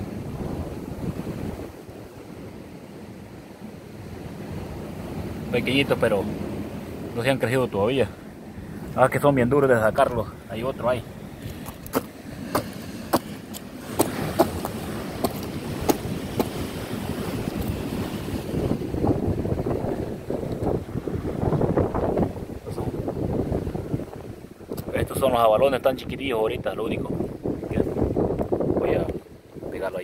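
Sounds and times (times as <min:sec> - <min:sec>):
surf washing: 0:00.0 - 0:30.0
wind buffeting microphone: 0:00.0 - 0:30.0.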